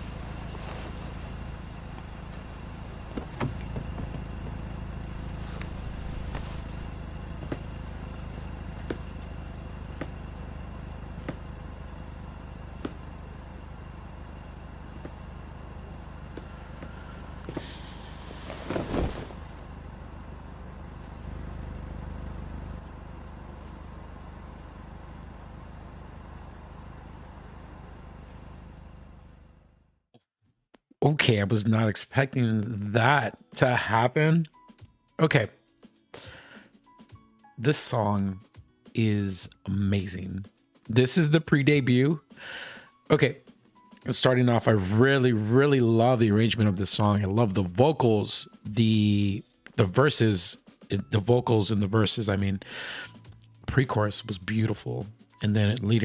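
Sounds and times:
car traffic rumble: 0:00.0 - 0:29.8.

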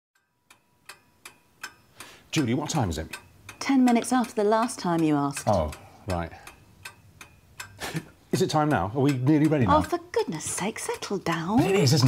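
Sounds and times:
clock ticking: 0:00.2 - 0:12.0.

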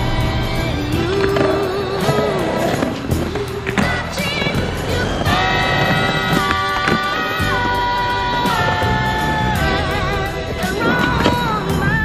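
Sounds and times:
music with wavering melody: 0:00.0 - 0:12.0
skateboard wheels rolling on concrete: 0:00.0 - 0:12.0.

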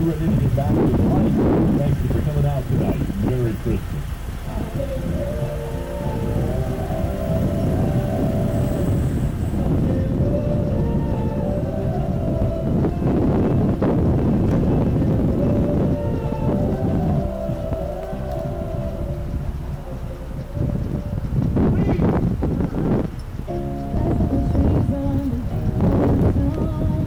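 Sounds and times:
music on car radio: 0:00.0 - 0:27.0
wind buffeting microphone: 0:00.0 - 0:27.0.

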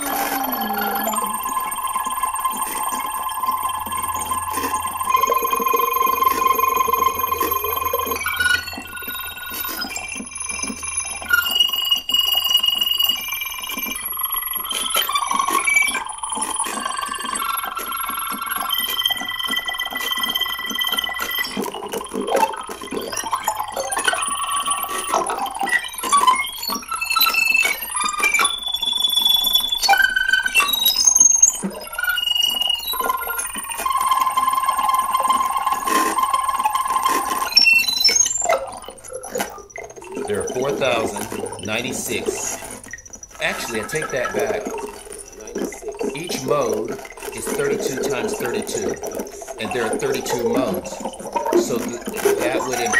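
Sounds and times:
scattered clicks: 0:00.0 - 0:52.9
synthesizer beeps and bell tones: 0:00.0 - 0:52.9.

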